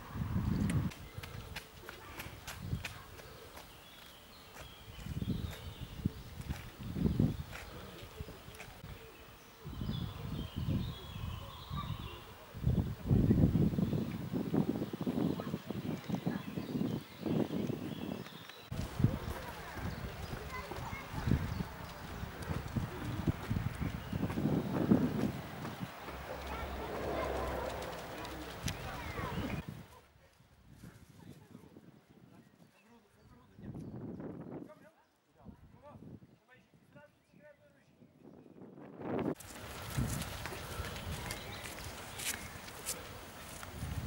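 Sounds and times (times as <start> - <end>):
indistinct voices: 18.7 - 29.6.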